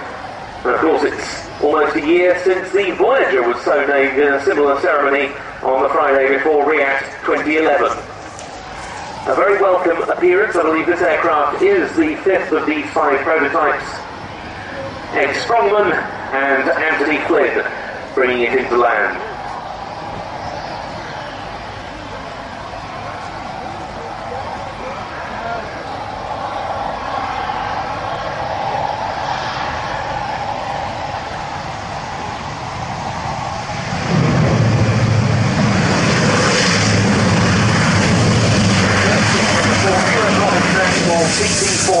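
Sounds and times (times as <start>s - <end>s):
turboprop engines droning: 0.0s - 42.0s.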